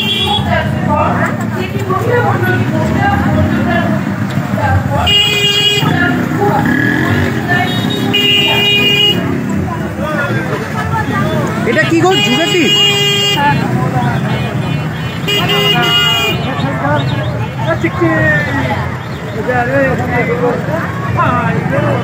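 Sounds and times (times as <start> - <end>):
horn tooting: 0.0 - 0.8, 4.9 - 9.5, 10.6 - 19.4
dense crowd chattering: 0.0 - 22.0.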